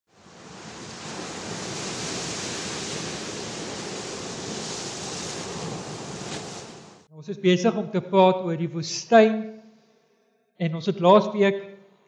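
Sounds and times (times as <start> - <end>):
ocean surf rushing: 0.1 - 7.1.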